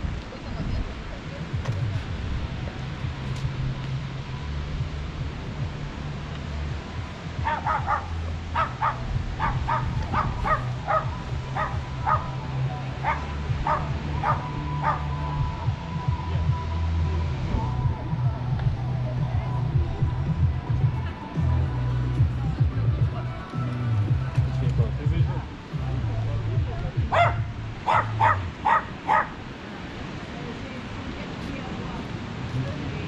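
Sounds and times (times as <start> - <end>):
music with bass line: 1.3 - 28.6
small dog yapping: 7.4 - 12.3, 27.1 - 29.4.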